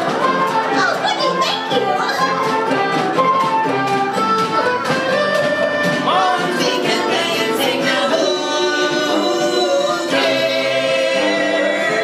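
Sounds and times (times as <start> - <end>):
band playing: 0.0 - 12.0
group singing long held notes: 6.0 - 12.0.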